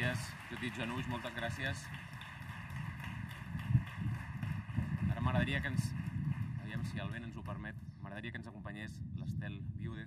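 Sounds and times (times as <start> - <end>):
low rumble and thumps on microphone: 2.7 - 10.0.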